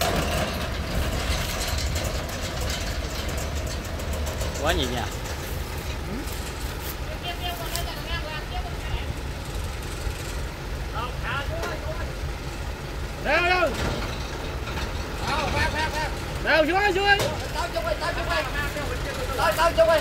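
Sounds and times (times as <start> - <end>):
truck engine idling: 0.0 - 20.0
men calling out: 15.2 - 20.0.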